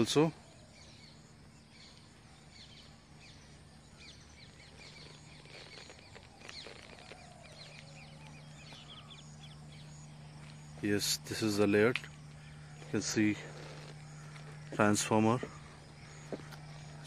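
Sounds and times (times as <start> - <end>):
birds chirping: 0.0 - 17.0
low steady hum: 0.0 - 17.0.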